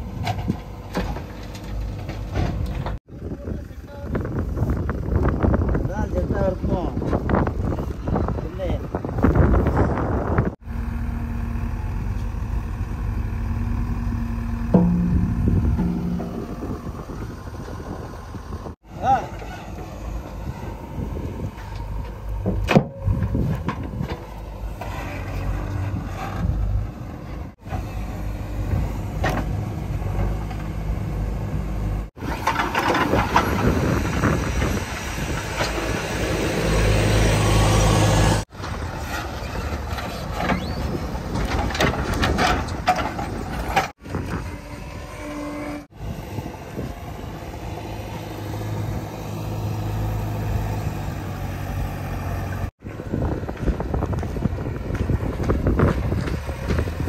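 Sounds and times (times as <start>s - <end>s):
backhoe diesel engines working: 0.0s - 57.0s.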